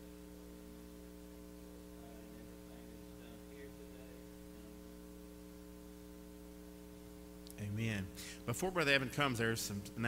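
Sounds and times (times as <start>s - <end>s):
electrical mains hum: 0.0s - 10.0s
man talking: 1.9s - 4.8s, 7.5s - 10.0s.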